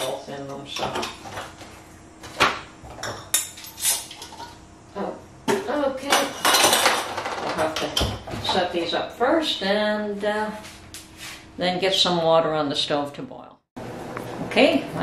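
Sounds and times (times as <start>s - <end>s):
glass jars and metal bands clinking: 6.2s - 7.2s.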